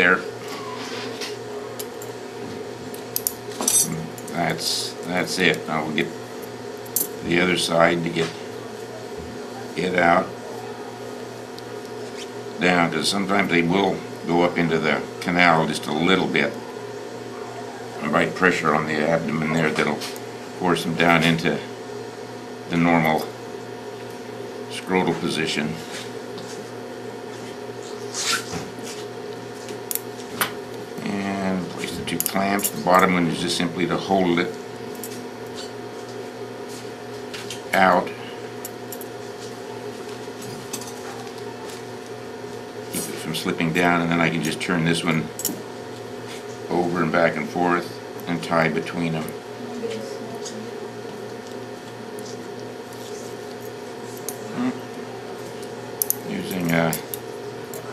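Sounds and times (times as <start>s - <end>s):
low electrical hum: 0.0s - 57.9s.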